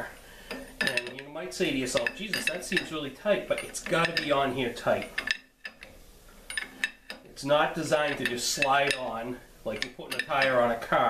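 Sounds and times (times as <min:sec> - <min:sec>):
wrench clicking on metal nut: 0:00.5 - 0:01.3, 0:01.9 - 0:02.9, 0:03.5 - 0:04.3, 0:05.0 - 0:05.9, 0:08.0 - 0:09.1, 0:09.8 - 0:10.7.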